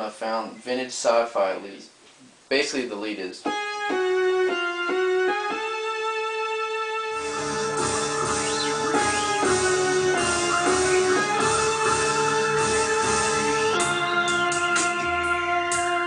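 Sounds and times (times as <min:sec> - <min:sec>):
synthesizer lead line: 0:07.1 - 0:15.9
backing music with drums: 0:07.2 - 0:16.0.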